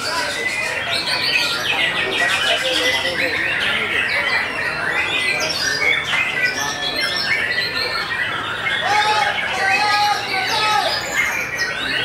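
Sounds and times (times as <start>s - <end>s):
other birds singing: 0.0s - 12.0s.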